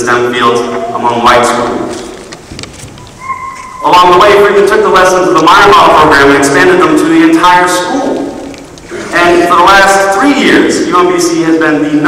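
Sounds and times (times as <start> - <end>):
man's amplified speech: 0.0 - 2.2, 3.8 - 12.0.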